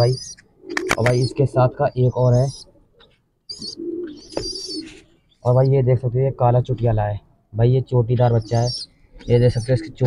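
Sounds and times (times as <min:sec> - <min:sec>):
pigeon cooing: 0:00.0 - 0:05.1, 0:08.3 - 0:10.0
high chirping: 0:00.0 - 0:05.8, 0:08.2 - 0:10.0.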